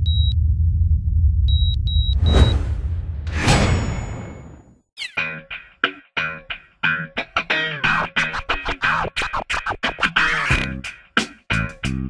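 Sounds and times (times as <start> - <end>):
electronic heart monitor beeps: 0.0 - 0.4, 1.5 - 2.8
low rumbling drone: 0.0 - 3.3.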